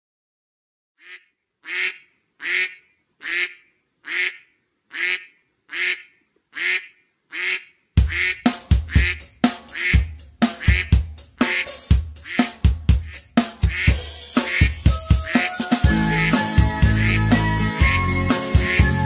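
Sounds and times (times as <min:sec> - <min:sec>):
duck quacking: 0:01.0 - 0:19.0
children's song with drum beat: 0:08.0 - 0:19.0.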